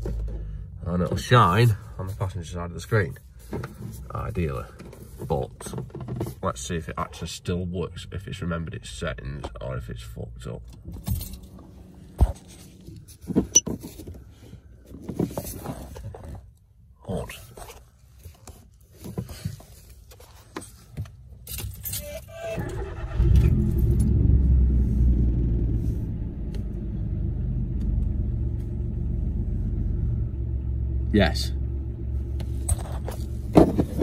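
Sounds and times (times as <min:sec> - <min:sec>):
car engine starting and idling: 0:22.1 - 0:34.0.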